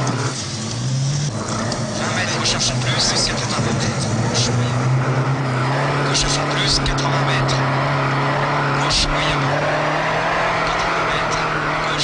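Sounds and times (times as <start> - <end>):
rally car engine running: 0.0 - 12.0.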